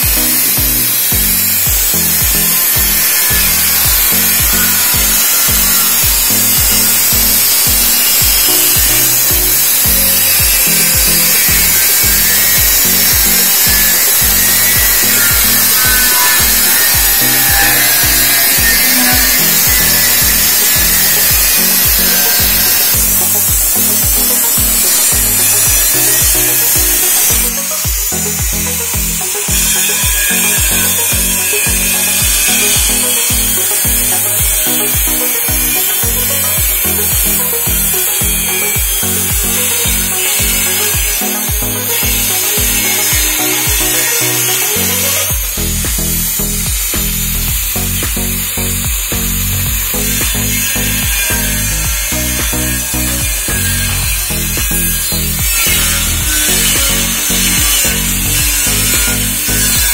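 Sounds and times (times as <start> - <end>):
angle grinder cutting metal: 0.0 - 59.9
background music with steady beat: 0.0 - 59.9.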